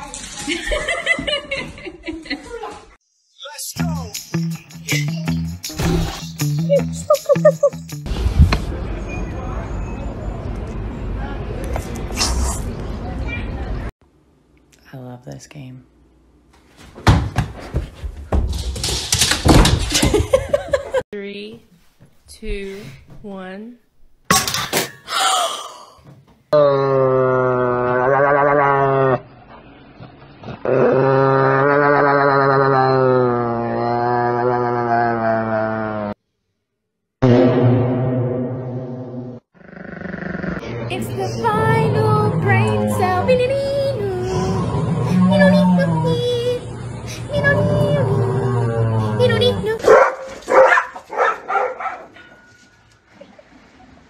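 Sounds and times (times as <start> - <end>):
dog barking: 49.8 - 52.2.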